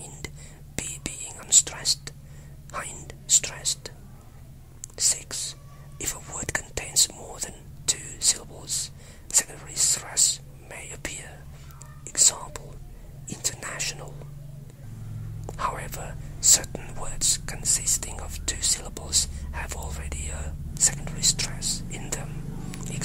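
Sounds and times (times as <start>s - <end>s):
person whispering: 0.0s - 4.0s, 4.9s - 14.3s, 15.5s - 23.0s
faint low hum: 0.0s - 23.0s.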